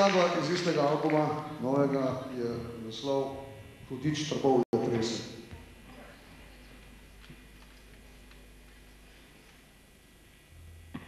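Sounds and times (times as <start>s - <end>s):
sound system hum: 0.0s - 11.0s.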